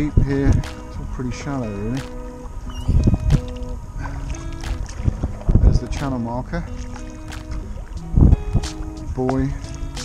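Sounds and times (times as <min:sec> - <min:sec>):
background music with held notes: 0:00.0 - 0:10.0
paddle strokes splashing water: 0:00.0 - 0:10.0.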